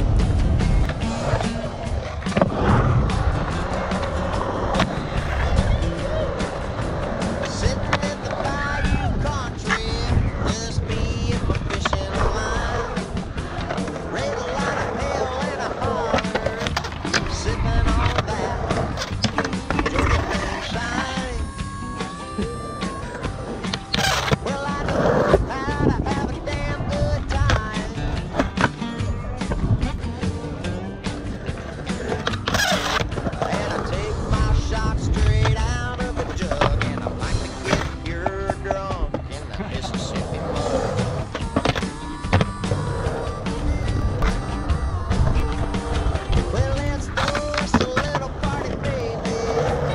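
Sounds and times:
music playing: 0.0 - 49.9
skateboard wheels rolling on concrete: 0.0 - 49.9
skateboard clacks: 0.3 - 49.9.

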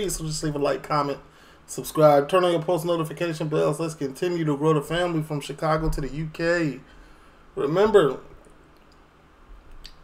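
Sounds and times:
man talking: 0.0 - 6.9, 7.6 - 8.4
faint room hiss: 0.0 - 10.0.

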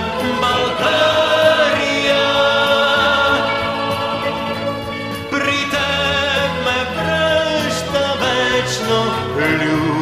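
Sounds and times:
choir singing long notes: 0.0 - 6.4
musical backing: 0.0 - 10.0.

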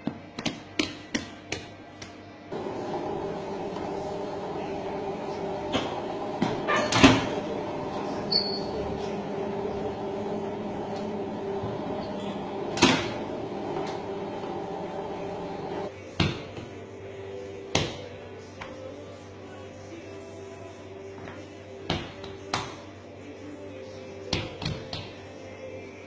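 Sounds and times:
hands slapping dough on steel: 0.0 - 2.2, 21.9 - 22.8
dough sheeter motor hum: 2.5 - 15.9.

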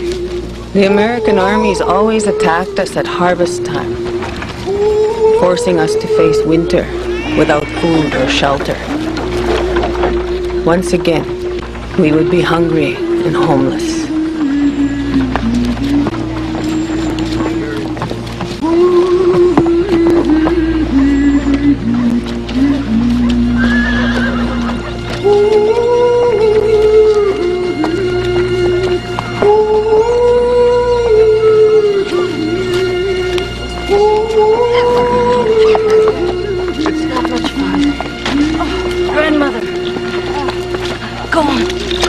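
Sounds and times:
film score with wordless singing: 0.0 - 42.0
held melody note: 0.0 - 42.0.

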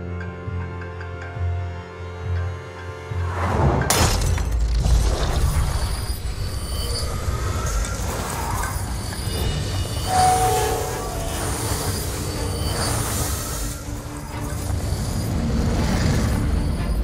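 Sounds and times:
shrill metallic screeching: 5.2 - 17.0.

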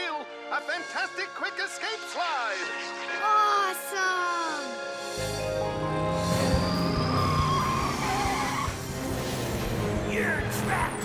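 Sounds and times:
background music: 0.0 - 11.0
cartoon tires squealing: 6.3 - 8.8.

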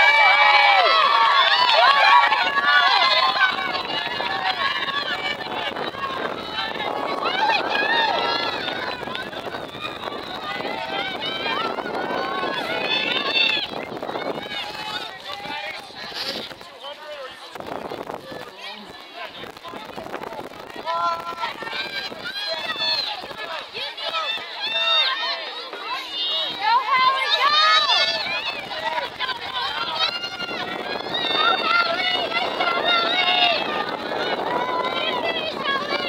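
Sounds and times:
spectators yelling and cheering: 0.0 - 36.0.

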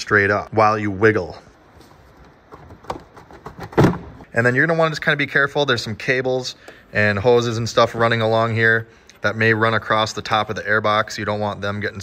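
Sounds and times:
plastic airbox handling clicks: 2.2 - 4.2.

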